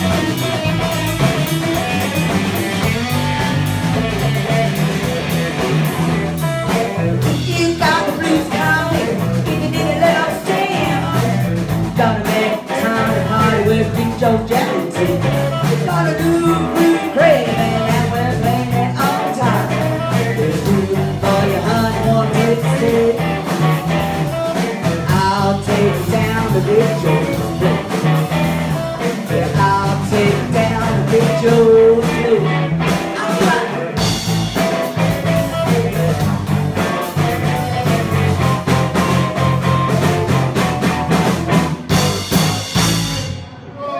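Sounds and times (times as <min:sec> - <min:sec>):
drum kit: 0:00.0 - 0:43.8
bass guitar: 0:00.0 - 0:43.9
electric guitar: 0:00.0 - 0:43.9
woman singing into a microphone: 0:06.8 - 0:23.2.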